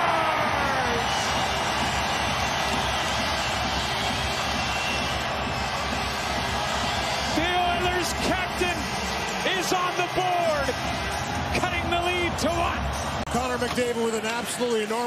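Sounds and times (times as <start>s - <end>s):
crowd cheering: 0.0s - 15.0s.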